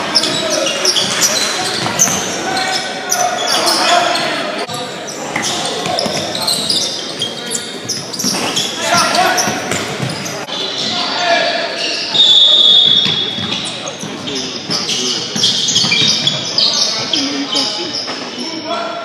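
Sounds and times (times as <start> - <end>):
voices echoing: 0.0 - 19.0
basketball bouncing: 7.8 - 10.3, 13.0 - 16.4.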